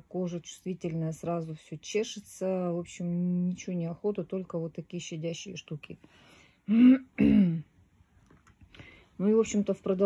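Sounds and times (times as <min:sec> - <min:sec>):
woman clearing her throat: 0:06.7 - 0:07.7.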